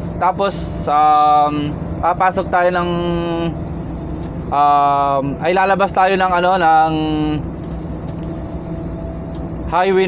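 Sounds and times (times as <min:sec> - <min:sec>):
truck cab engine and road drone: 0:00.0 - 0:10.0.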